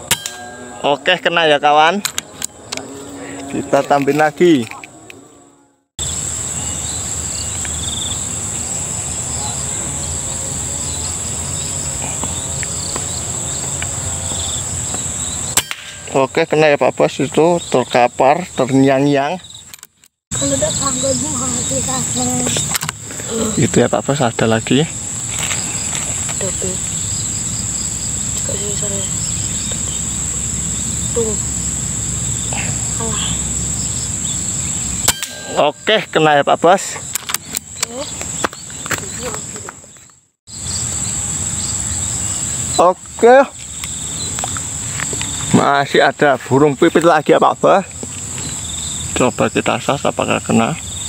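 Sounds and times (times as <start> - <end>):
crickets and insects chirring: 0.0 - 51.0.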